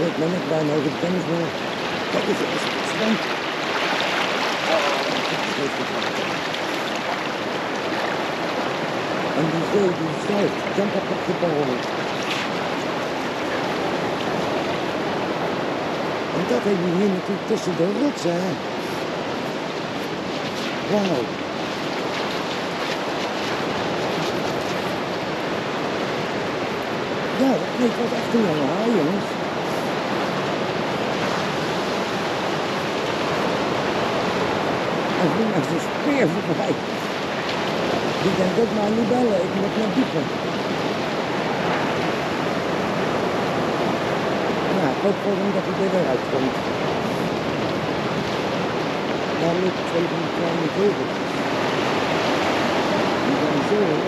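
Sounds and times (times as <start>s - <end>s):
seawater washing over sand: 0.0s - 54.0s
surf rushing on rocks: 0.0s - 54.0s.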